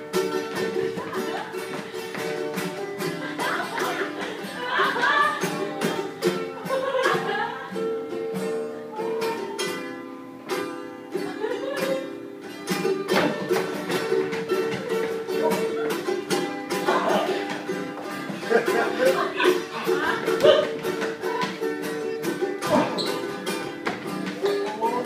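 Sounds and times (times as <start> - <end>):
acoustic guitar strumming chords: 0.0 - 25.0.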